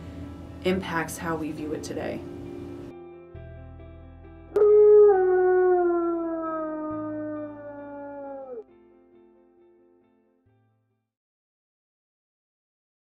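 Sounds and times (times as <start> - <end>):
soft background music: 0.0 - 10.8
wolf howling: 4.6 - 8.6.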